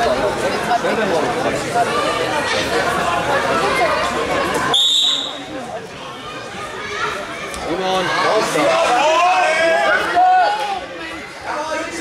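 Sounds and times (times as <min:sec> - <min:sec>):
spectators chattering: 0:00.0 - 0:12.0
referee's whistle blast: 0:04.7 - 0:05.5.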